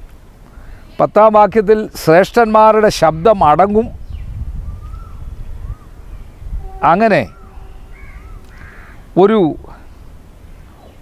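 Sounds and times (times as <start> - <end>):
small birds calling: 2.6 - 11.0
crow cawing: 6.7 - 9.1.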